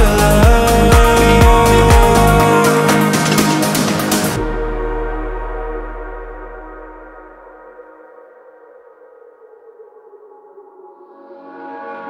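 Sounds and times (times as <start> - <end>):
sustained synthesizer chord: 0.0 - 12.0.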